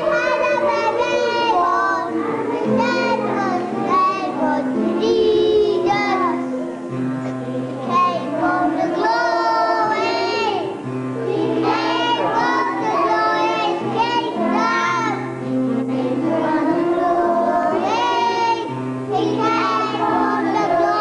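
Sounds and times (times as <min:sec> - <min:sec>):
children singing: 0:00.0 - 0:21.0
held accompanying notes: 0:00.0 - 0:21.0.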